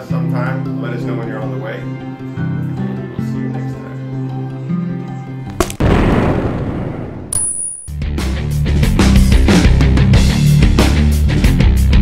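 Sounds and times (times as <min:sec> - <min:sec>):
guitar music: 0:00.0 - 0:05.6
sharp crack: 0:05.5 - 0:07.5
rushing blast sound effect: 0:05.8 - 0:07.3
rock music with heavy beat: 0:07.9 - 0:12.0.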